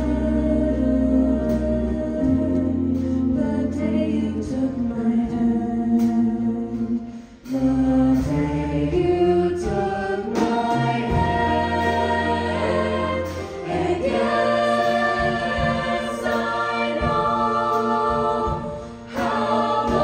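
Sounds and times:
choir singing in close harmony: 0:00.0 - 0:20.0.

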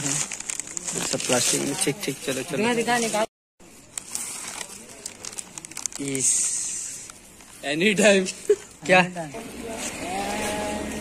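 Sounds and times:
plastic packaging crinkling: 0:00.0 - 0:02.3, 0:03.9 - 0:07.6.

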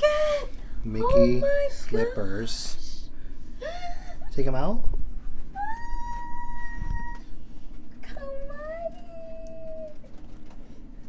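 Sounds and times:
plastic wrapping crinkling: 0:08.7 - 0:10.9.

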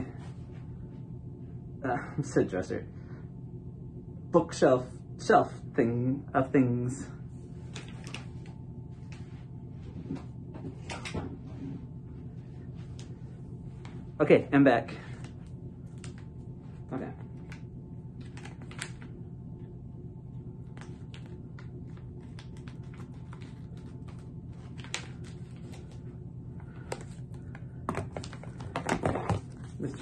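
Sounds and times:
steady low hum: 0:00.0 - 0:30.0
plastic pouch clicking and crinkling: 0:18.2 - 0:19.1.

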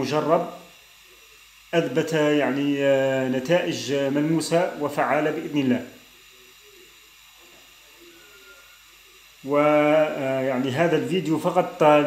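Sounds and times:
gas stove burner hissing: 0:00.0 - 0:12.0.

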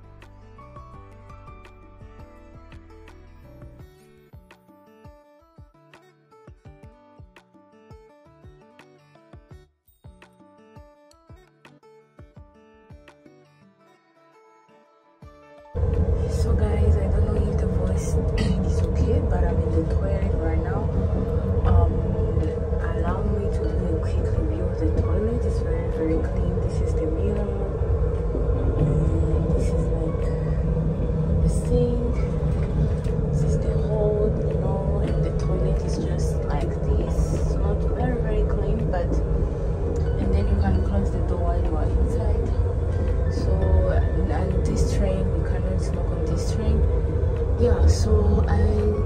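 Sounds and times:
background music: 0:00.0 - 0:49.0
train rumbling: 0:15.8 - 0:49.0.

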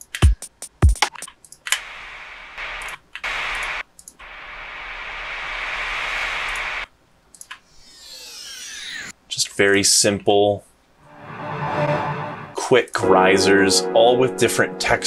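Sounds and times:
white-noise riser: 0:07.7 - 0:09.1, 0:11.0 - 0:12.8.

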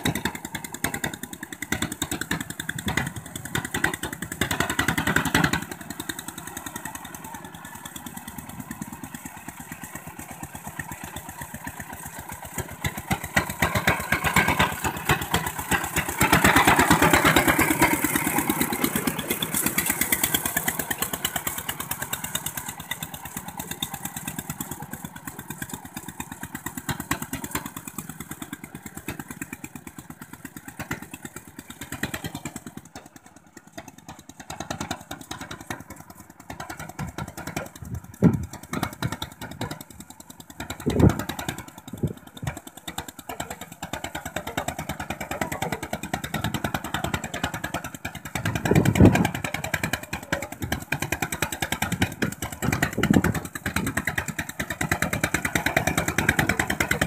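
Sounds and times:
diesel tractor engine running: 0:00.0 - 0:57.0.

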